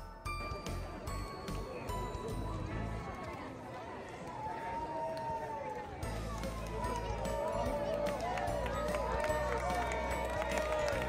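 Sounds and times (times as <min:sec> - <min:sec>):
spectators calling out and cheering: 0:00.3 - 0:11.0.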